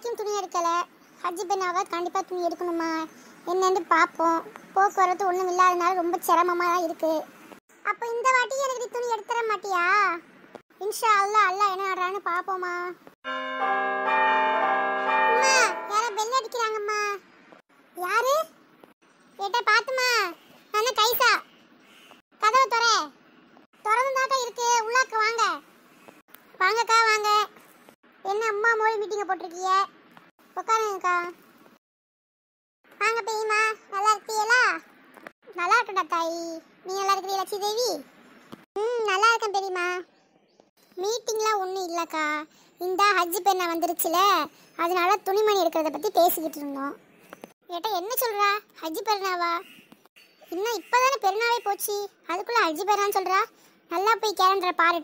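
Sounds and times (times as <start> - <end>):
high-pitched cartoon voice talking: 0.0 - 7.2, 7.8 - 10.2, 15.2 - 17.2, 18.0 - 18.6, 22.4 - 23.1, 23.9 - 25.6, 26.6 - 27.5, 28.2 - 29.9, 30.6 - 31.4, 33.0 - 34.9, 35.5 - 38.0, 38.8 - 40.0, 41.0 - 47.0, 47.7 - 49.6, 50.5 - 55.0
bell-like chime chord: 13.3 - 16.2.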